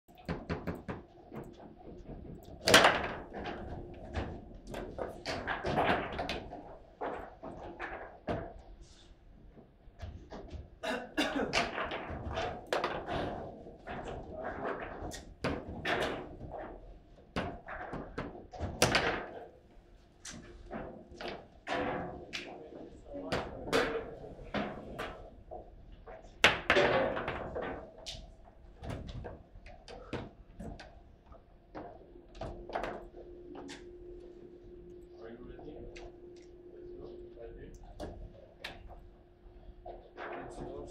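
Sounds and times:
foosball knocks and clacks: 0:00.1 - 0:08.7, 0:11.5 - 0:19.5, 0:23.3 - 0:31.0.

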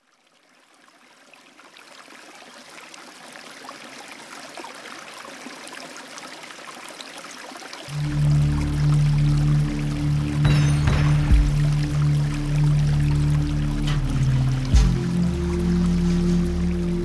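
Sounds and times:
trickling stream water: 0:00.0 - 0:17.0
loud low musical note: 0:08.0 - 0:17.0.

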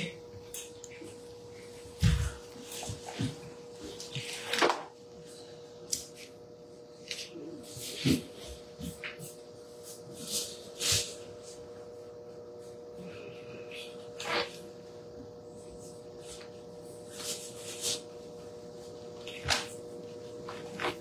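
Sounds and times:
faint steady hum: 0:00.0 - 0:21.0.

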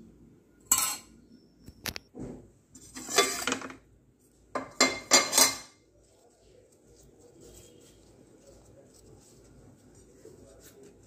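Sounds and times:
dishes clinking: 0:00.6 - 0:01.2, 0:02.9 - 0:03.9, 0:04.6 - 0:05.8.

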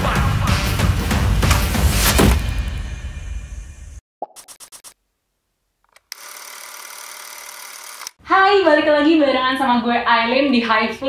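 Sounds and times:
fast mechanical whirring: 0:06.1 - 0:08.2.

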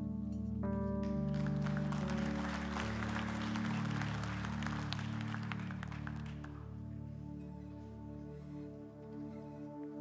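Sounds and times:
keyboard holding chords: 0:00.0 - 0:07.6
congregation clapping: 0:01.0 - 0:06.8.

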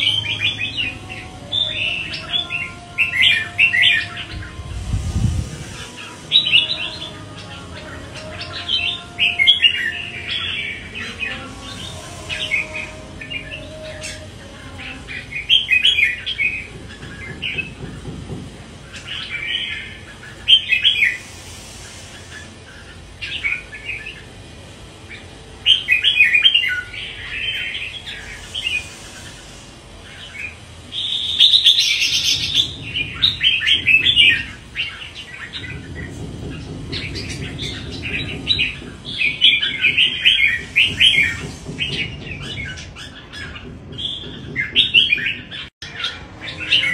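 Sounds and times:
bird singing warbling phrases: 0:00.0 - 0:18.1, 0:18.8 - 0:46.9.

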